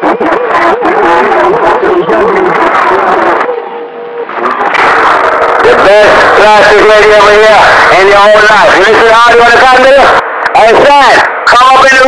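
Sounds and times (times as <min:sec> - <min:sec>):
whistle-like radio tone: 0:00.0 - 0:09.0
noisy garbled radio signal: 0:00.0 - 0:12.0
warbling radio tone: 0:00.0 - 0:12.0.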